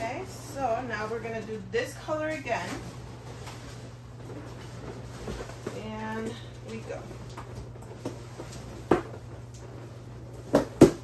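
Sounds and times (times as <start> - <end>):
balloons being handled: 0.1 - 11.0.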